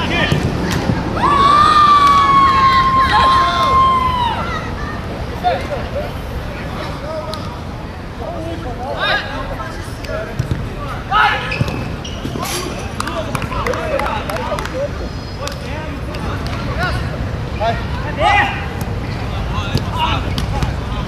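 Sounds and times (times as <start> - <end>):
players shouting: 0.0 - 5.7, 10.8 - 14.3, 18.0 - 21.0
steady background hum: 0.0 - 21.0
ball kicked and bouncing: 10.3 - 10.7, 11.5 - 12.5, 19.7 - 20.8.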